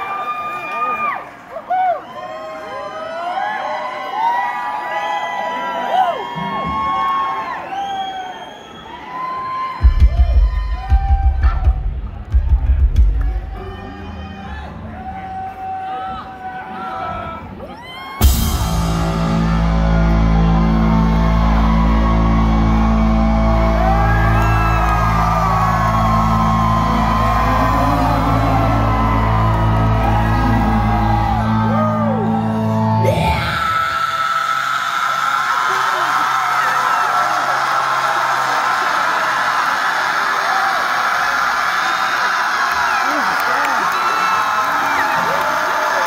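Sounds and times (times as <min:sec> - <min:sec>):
crowd cheering and yelling: 0:00.0 - 0:46.0
rock band playing loud chord: 0:18.2 - 0:33.6.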